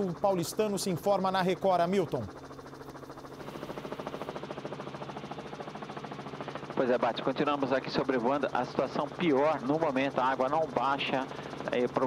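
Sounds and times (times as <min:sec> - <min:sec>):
helicopter engine hum: 0:00.0 - 0:12.0
helicopter rotor chop: 0:00.0 - 0:12.0.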